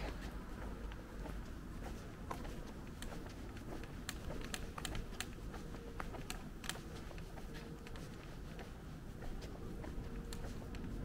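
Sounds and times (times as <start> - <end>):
footsteps on brick paving: 0.0 - 11.0.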